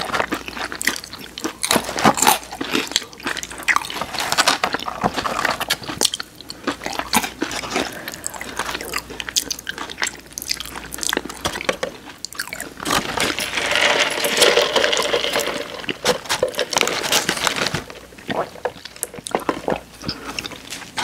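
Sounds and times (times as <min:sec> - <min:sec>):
wet chewing: 0:00.0 - 0:13.4
crunching food: 0:00.0 - 0:21.0.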